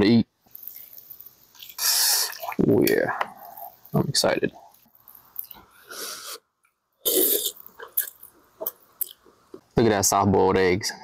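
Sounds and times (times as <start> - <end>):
noodles being slurped: 0.6 - 3.8, 7.0 - 8.3
mouth clicks: 6.3 - 9.4.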